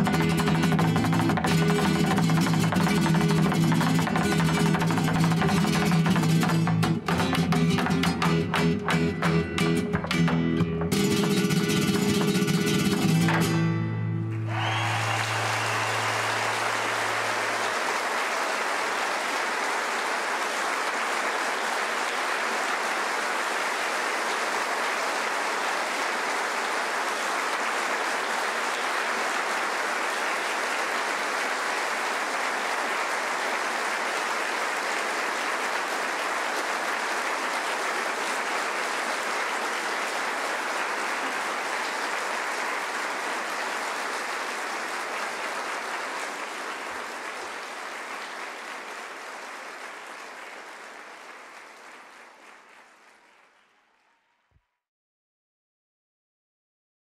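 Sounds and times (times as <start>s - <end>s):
audience applauding: 0.0s - 54.6s.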